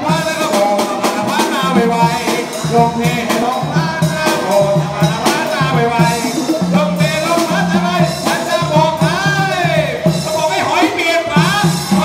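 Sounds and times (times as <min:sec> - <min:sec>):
congas: 0:00.0 - 0:12.0
snare drum: 0:00.0 - 0:12.0.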